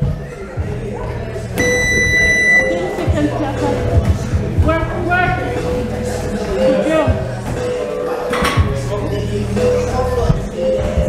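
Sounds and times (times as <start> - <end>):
background music: 0.0 - 11.0
electronic beep: 1.6 - 2.8.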